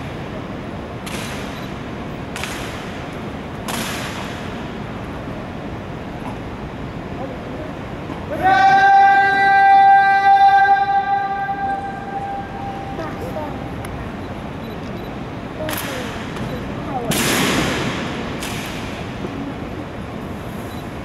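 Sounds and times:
person calling drill command: 8.3 - 13.8.

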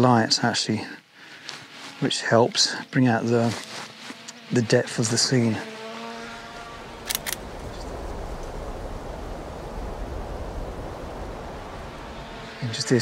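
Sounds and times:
drone propellers buzzing: 1.6 - 13.0
wind buffeting microphone: 7.0 - 12.5.

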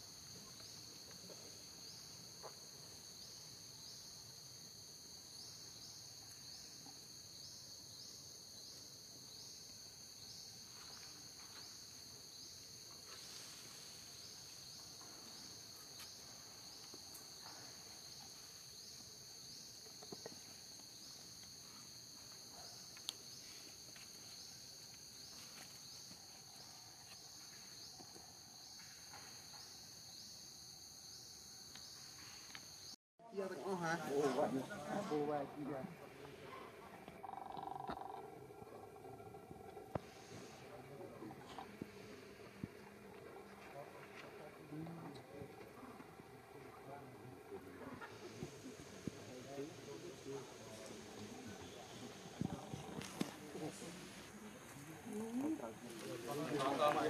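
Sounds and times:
high-pitched insect chorus: 0.0 - 57.0.

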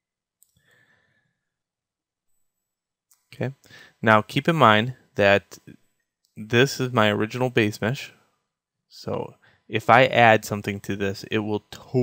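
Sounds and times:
faint exhale: 0.6 - 1.4, 3.6 - 4.0
man speaking: 3.3 - 5.8, 6.4 - 8.2, 8.9 - 12.0.

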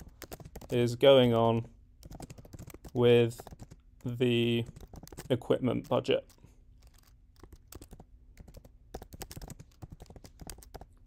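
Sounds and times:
typing on computer keyboard: 0.0 - 0.9, 2.0 - 11.0.

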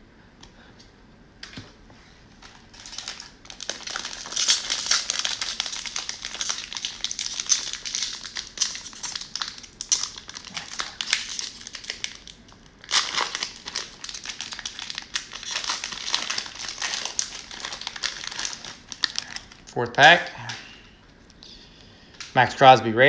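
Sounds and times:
cellophane wrapper crinkling: 2.4 - 19.8.

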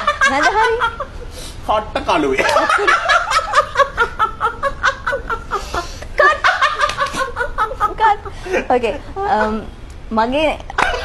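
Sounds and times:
person drawing breath: 5.6 - 6.2.

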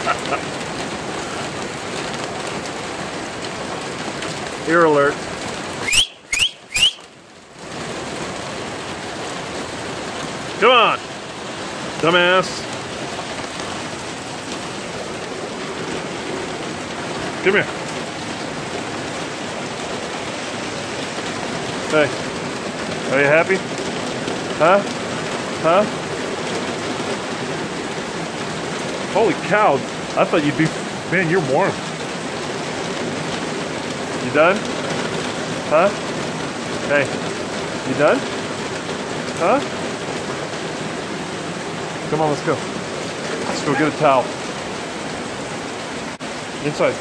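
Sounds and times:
heavy rain pouring: 0.0 - 47.0.

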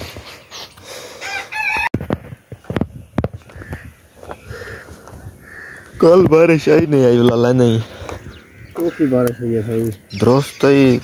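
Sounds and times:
rooster crowing: 1.2 - 2.0.

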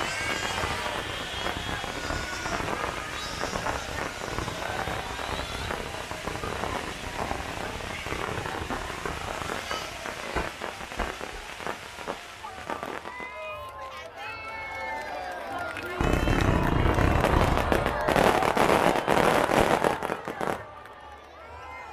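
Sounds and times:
loud firework bangs: 0.0 - 13.3, 16.0 - 20.7
fireworks crackling: 0.0 - 21.8.

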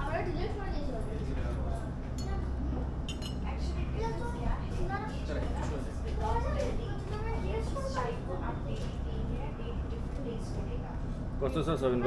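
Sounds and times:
low steady hum: 0.0 - 12.0
metal spoon clinking porcelain cup: 3.1 - 3.4.

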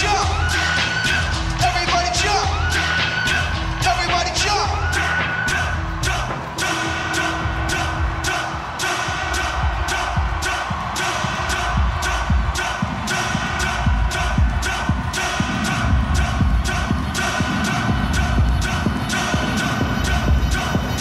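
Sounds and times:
electronic dance music: 0.0 - 21.0.

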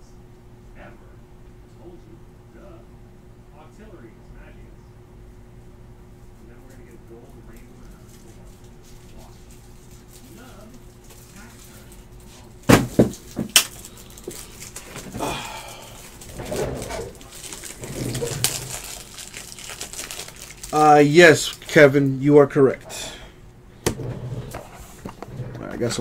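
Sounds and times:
rustling and handling noises: 6.2 - 21.8.

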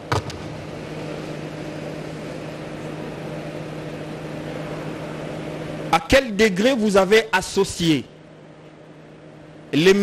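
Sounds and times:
sound system hum and hiss: 0.0 - 10.0.

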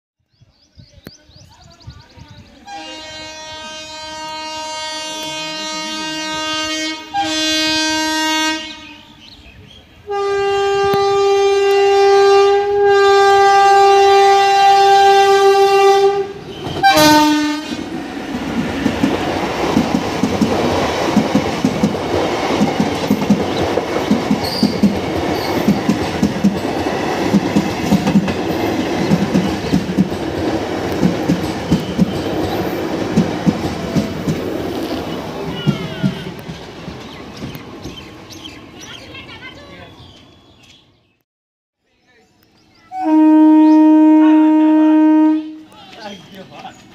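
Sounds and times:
train horn blasts: 2.7 - 9.2, 10.1 - 17.8, 35.5 - 36.4, 42.9 - 45.8
train wheels clickety-clack: 17.7 - 38.1.

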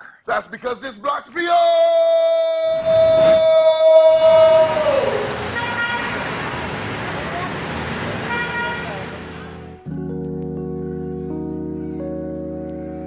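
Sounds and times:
man yelling: 1.4 - 5.5.

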